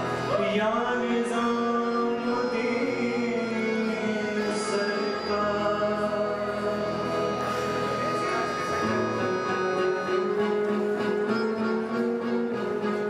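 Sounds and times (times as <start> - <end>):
keyboard and harmonium chords: 0.0 - 13.0.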